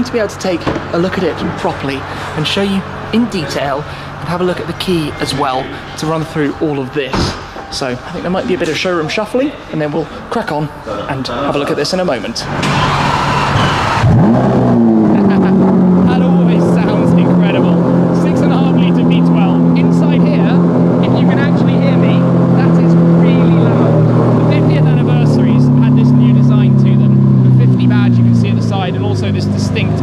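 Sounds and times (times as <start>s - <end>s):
car engine starting and idling: 0.0s - 10.6s, 11.5s - 30.0s.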